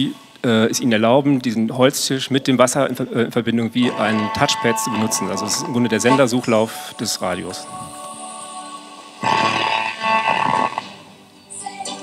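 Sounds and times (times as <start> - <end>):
garbled radio broadcast and tones: 3.8 - 8.2, 9.2 - 11.0.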